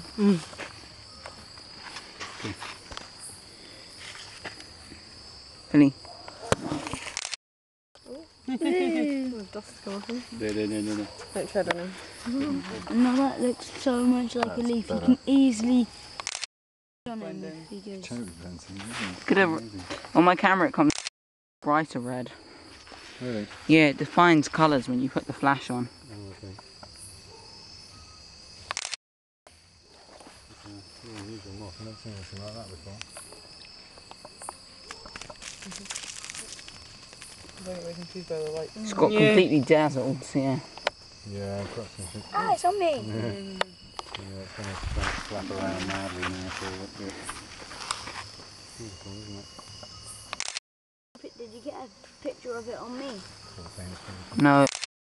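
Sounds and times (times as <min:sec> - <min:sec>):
crickets chirping: 0:00.0 - 0:07.4, 0:08.0 - 0:16.5, 0:17.1 - 0:21.0, 0:21.6 - 0:50.6, 0:51.2 - 0:54.8
sharp click: 0:28.6 - 0:29.0, 0:50.3 - 0:50.6.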